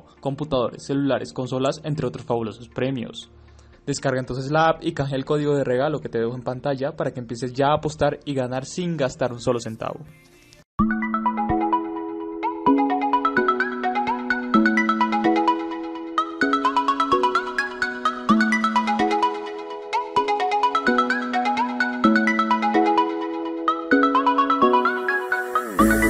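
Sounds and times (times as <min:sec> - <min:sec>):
light repeating background music: 0:00.0 - 0:26.0.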